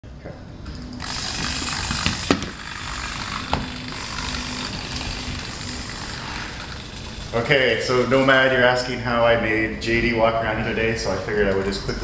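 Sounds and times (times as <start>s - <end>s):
robot servos whirring: 1.0s - 7.4s.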